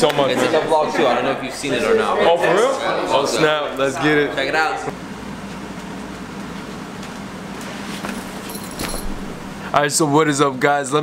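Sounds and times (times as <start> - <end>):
machine hum and hiss: 3.8 - 11.0.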